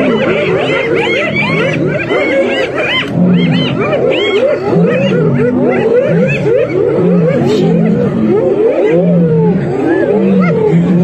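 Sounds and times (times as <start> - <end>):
hyenas giggling and calling: 0.0 - 11.0
low drawn-out hyena calls: 0.0 - 11.0.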